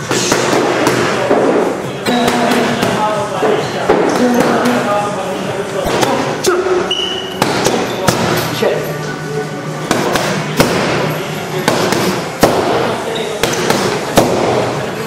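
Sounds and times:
punches smacking boxing pads: 0.1 - 1.2, 7.4 - 8.4, 9.9 - 11.0, 11.6 - 14.7.

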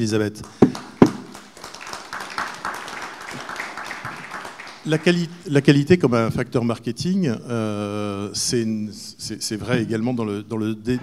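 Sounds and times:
microphone being bumped: 0.6 - 1.3.

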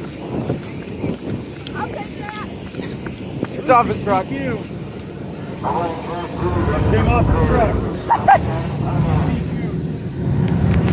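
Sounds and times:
people talking: 0.0 - 4.7, 5.6 - 10.0
vehicle engine rumble: 0.0 - 10.9.

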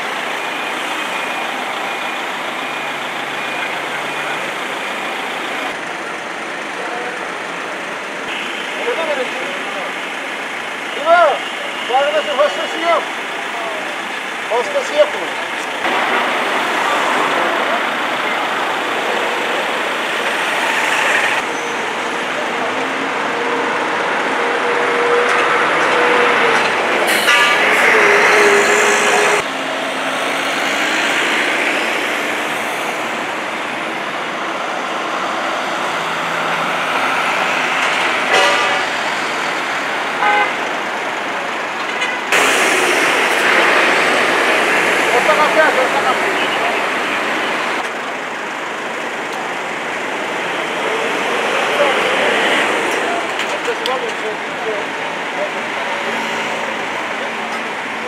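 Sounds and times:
vehicle engines passing: 0.0 - 58.0
long vehicle horn: 27.1 - 29.4, 38.2 - 39.0, 40.2 - 40.6.

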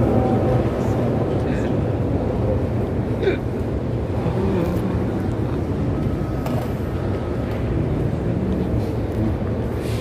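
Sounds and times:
low rumbling outdoor noise: 0.0 - 10.0.

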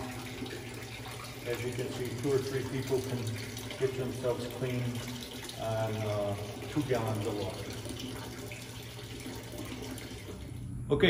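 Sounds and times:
water splashing into bucket: 0.0 - 10.6.

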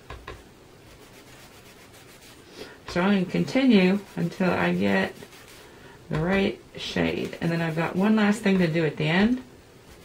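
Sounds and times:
blending tool rubbing paper: 0.8 - 5.7, 7.1 - 10.0.

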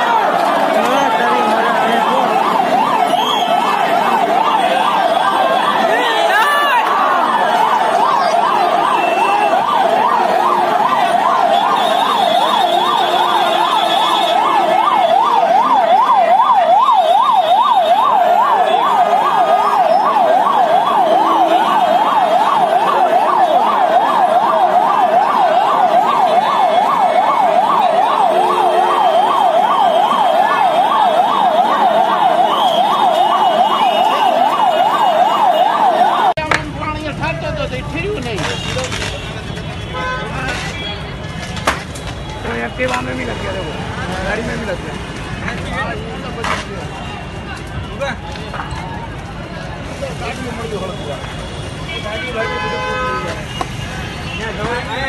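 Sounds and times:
emergency siren fast warble: 0.0 - 36.4.

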